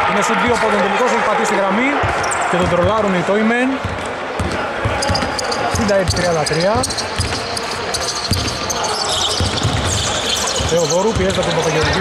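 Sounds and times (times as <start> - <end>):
basketball bouncing on wooden court: 3.8 - 12.0.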